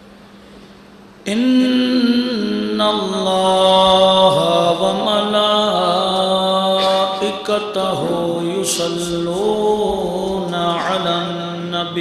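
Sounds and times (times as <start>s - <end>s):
man chanting through microphone: 1.3s - 12.0s.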